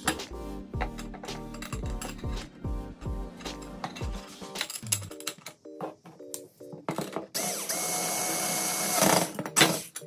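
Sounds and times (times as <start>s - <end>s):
electric screwdriver motor: 7.4s - 9.4s.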